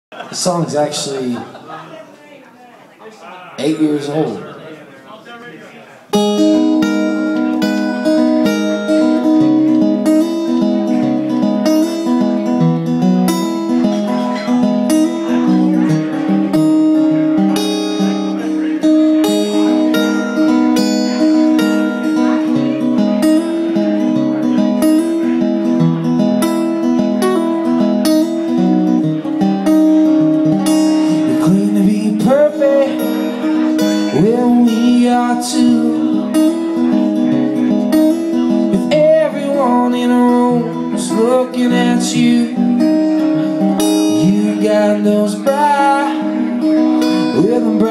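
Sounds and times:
acoustic guitar strumming chords: 0:06.1 - 0:47.9.

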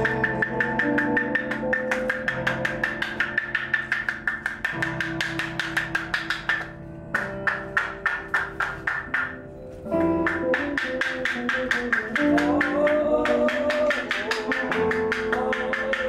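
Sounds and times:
fast percussion ticking: 0:00.0 - 0:09.3.

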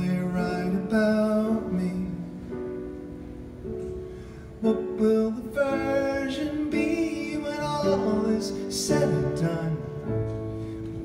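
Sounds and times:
grand piano: 0:00.0 - 0:11.0.

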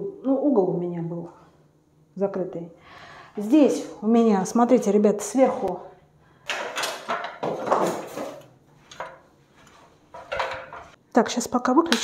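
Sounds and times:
stepladder scraping and knocking: 0:06.5 - 0:11.0.

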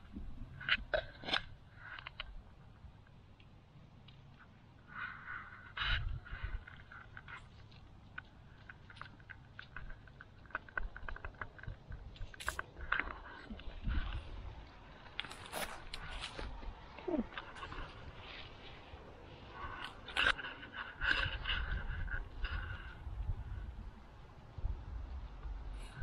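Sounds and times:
seeds rattling and crackling: 0:06.4 - 0:21.6.

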